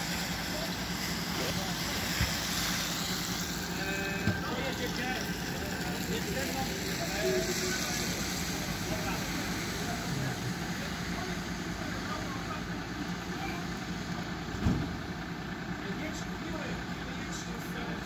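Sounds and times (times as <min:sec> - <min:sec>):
faint voices: 0:00.0 - 0:18.0
fire engines idling: 0:00.0 - 0:18.0
sharp thump: 0:14.5 - 0:15.0.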